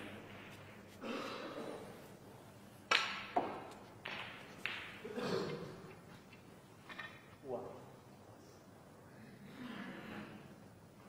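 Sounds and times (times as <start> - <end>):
sharp clicks in echoing hall: 2.9 - 7.3.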